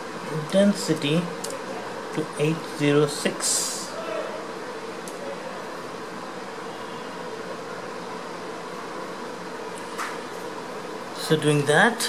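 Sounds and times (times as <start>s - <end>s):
fan-like background hum: 0.0s - 12.0s.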